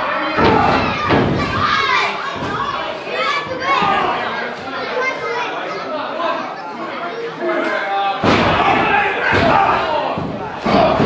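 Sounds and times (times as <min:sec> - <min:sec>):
crowd voices: 0:00.0 - 0:11.0
slam on wrestling ring: 0:08.2 - 0:11.0.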